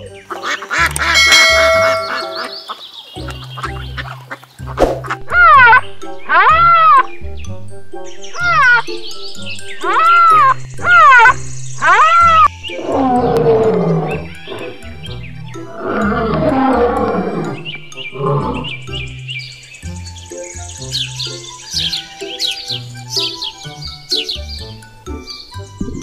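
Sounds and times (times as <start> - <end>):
light background music: 0.0 - 26.0
rhinoceros squealing calls: 5.2 - 7.1, 9.8 - 15.0
lion roars and growls: 12.3 - 18.9.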